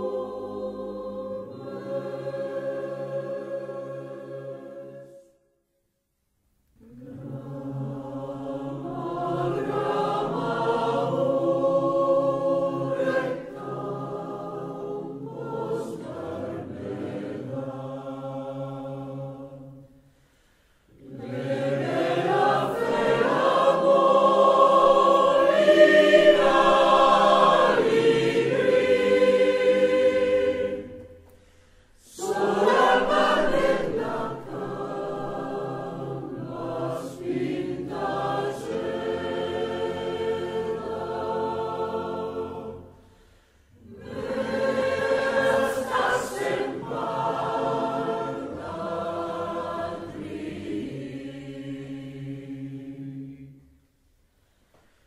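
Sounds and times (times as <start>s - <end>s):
mixed choir singing in harmony: 0.0s - 5.4s, 6.8s - 20.0s, 20.9s - 53.9s.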